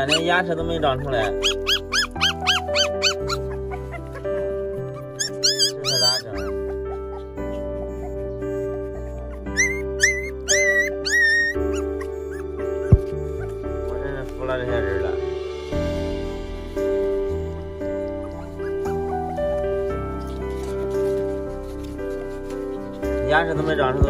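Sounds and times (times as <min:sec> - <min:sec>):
puppies whining: 0:00.0 - 0:15.2, 0:17.0 - 0:24.0
background music: 0:00.0 - 0:24.0.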